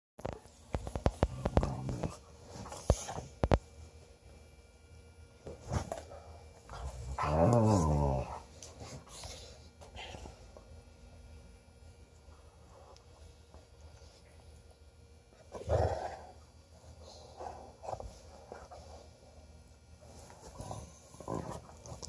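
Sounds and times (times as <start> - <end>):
dogs play-wrestling: 0.2 - 4.2, 5.4 - 10.7, 12.2 - 22.0
dogs play growling: 0.8 - 3.6, 5.4 - 10.6, 15.3 - 19.1, 20.0 - 22.0.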